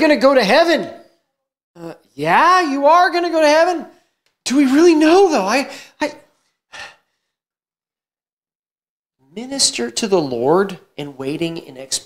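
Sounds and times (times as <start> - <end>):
man speaking: 0.0 - 1.1, 1.8 - 6.3, 9.3 - 12.0.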